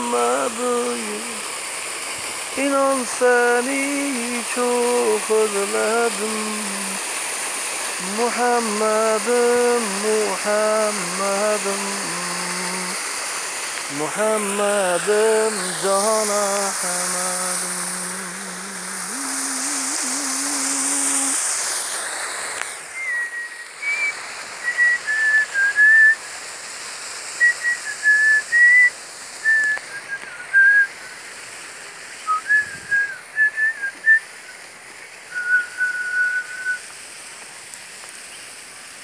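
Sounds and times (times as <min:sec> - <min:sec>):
man singing held note: 0:00.0 - 0:01.4, 0:02.6 - 0:07.0, 0:08.0 - 0:13.0, 0:13.9 - 0:21.4
steady hiss: 0:00.0 - 0:39.0
person whistling tune: 0:22.9 - 0:26.2, 0:27.4 - 0:30.9, 0:32.2 - 0:34.2, 0:35.3 - 0:36.8.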